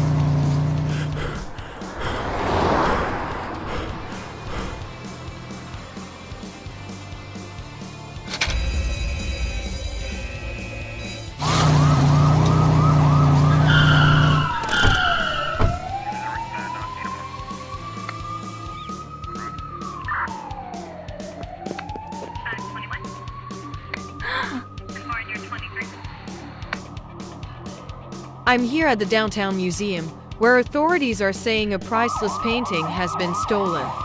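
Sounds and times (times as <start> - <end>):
police siren wailing and warbling: 8.4 - 26.4, 31.7 - 34.0.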